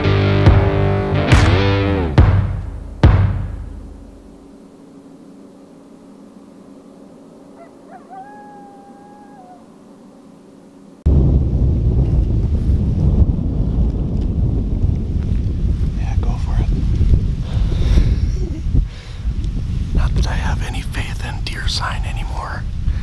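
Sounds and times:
long steady animal call: 7.0 - 10.4
wind rumbling on microphone: 11.0 - 23.0.

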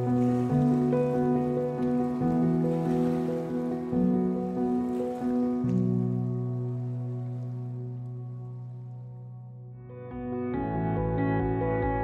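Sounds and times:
background music chords: 0.0 - 12.0.

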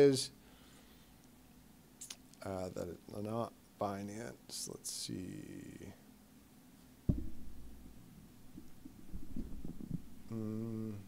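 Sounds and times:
dull low thump: 7.1 - 10.2.

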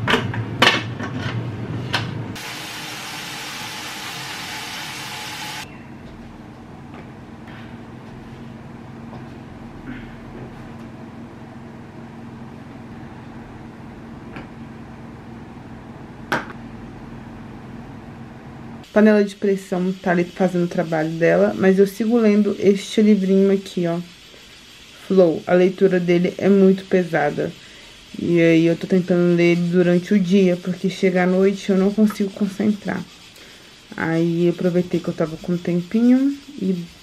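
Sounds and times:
pressure cooker hissing: 2.3 - 5.7, 18.8 - 37.0
low steady hum: 5.6 - 23.8.

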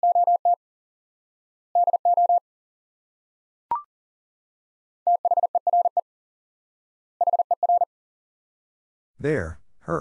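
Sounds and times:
morse code beeping: 1.8 - 2.4, 7.2 - 7.9.

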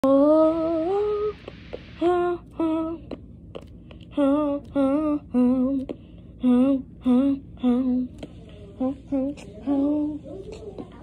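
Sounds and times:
woman singing or humming: 0.0 - 11.0.

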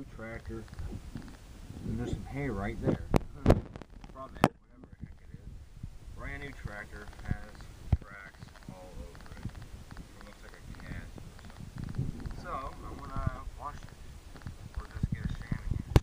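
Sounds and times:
phone microphone handling bumps: 2.8 - 5.4, 6.5 - 16.0.

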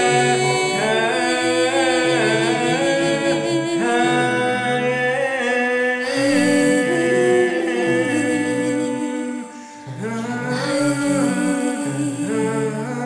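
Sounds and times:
voices chanting in held notes: 0.0 - 12.6.

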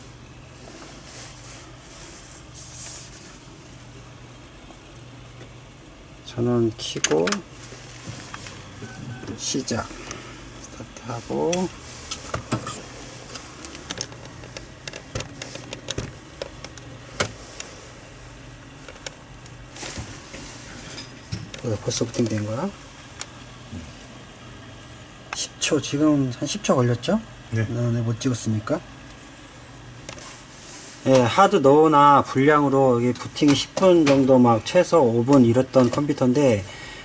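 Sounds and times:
low electrical hum: 0.0 - 37.0
hand rustling on computer case: 0.5 - 3.7, 10.9 - 22.7.

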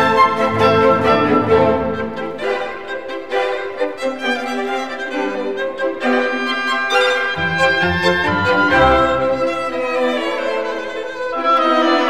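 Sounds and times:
violins: 0.0 - 12.0.

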